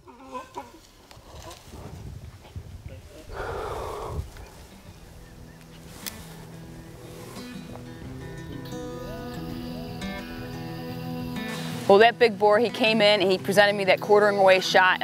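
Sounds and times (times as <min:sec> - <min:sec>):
soft background music: 0:04.8 - 0:15.0.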